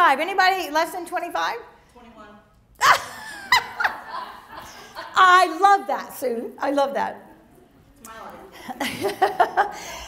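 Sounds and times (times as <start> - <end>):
woman laughing: 2.8 - 5.2, 8.7 - 10.0.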